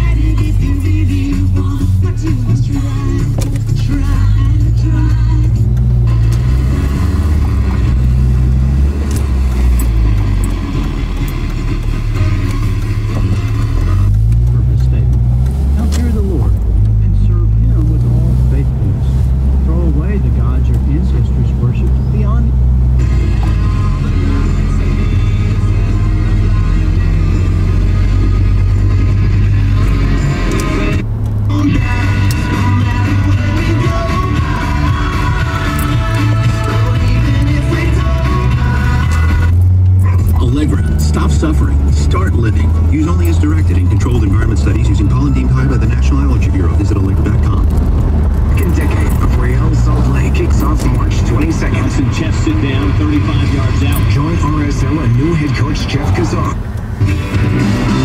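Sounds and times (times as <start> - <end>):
music on car radio: 0.0 - 58.0.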